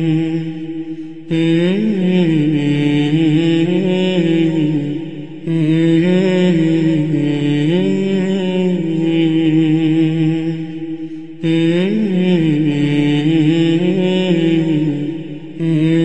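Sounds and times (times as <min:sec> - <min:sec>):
man chanting: 0:00.0 - 0:16.0.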